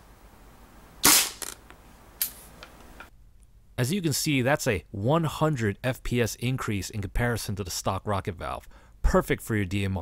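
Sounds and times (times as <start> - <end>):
airsoft rifle shot: 1.0 - 1.6
faint sharp crack: 1.0 - 1.6.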